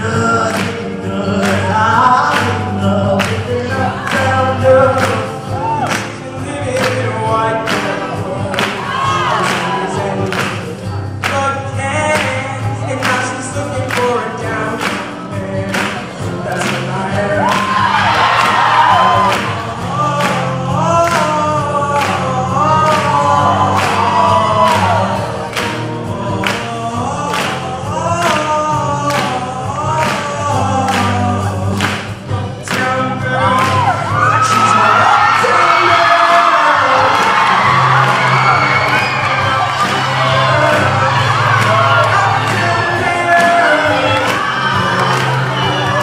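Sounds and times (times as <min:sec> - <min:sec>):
choir singing: 0:00.0 - 0:10.7, 0:16.0 - 0:46.0
band accompaniment with drum beat: 0:00.0 - 0:46.0.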